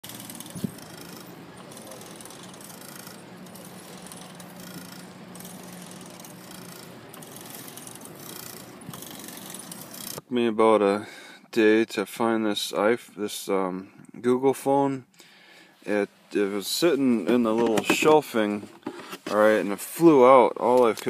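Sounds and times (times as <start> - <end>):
bicycle rolling over pavement: 0.0 - 10.2.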